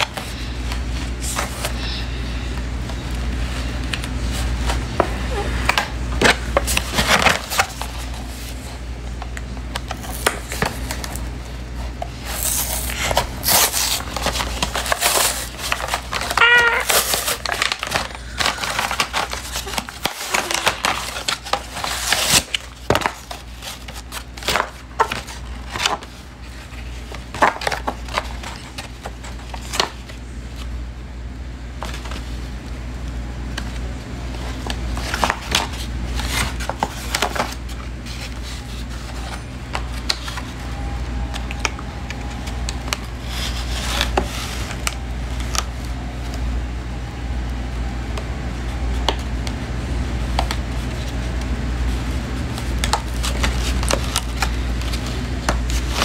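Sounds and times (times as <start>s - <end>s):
packaging torn and rustled: 3.0s - 30.7s, 33.5s - 46.4s, 50.2s - 56.0s
wavering high-pitched cry: 16.4s - 17.1s.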